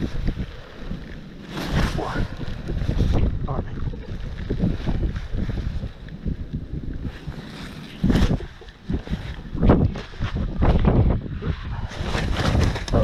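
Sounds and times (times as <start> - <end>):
waterproof clothing rustling: 0.0 - 13.0
wind rumbling on microphone: 0.0 - 13.0.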